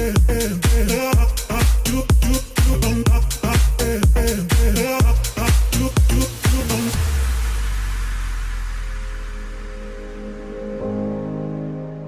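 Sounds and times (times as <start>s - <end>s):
held low bass note: 0.0s - 4.4s
dance music: 0.0s - 11.8s
wash of noise: 5.2s - 10.7s.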